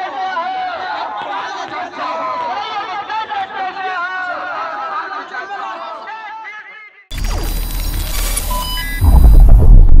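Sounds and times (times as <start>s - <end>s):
digital glitch and whoosh: 7.1s - 10.0s
short electronic beeps: 7.1s - 10.0s
deep bass rumble: 8.8s - 10.0s.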